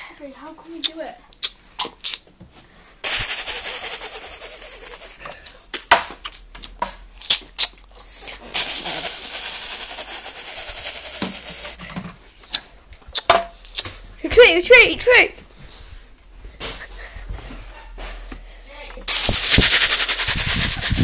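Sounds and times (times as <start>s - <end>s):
toy machine gun firing: 3.0s - 5.1s, 8.6s - 11.8s, 19.1s - 21.0s.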